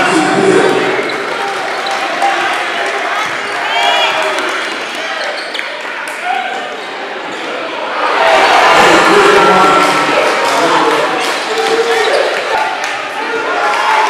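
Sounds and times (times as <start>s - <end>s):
crowd cheering: 0.0s - 14.0s
murmur of voices: 0.0s - 14.0s.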